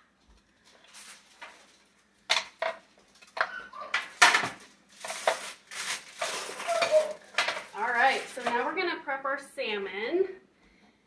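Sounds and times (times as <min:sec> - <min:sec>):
foil baking tray clattering: 0:00.8 - 0:08.8.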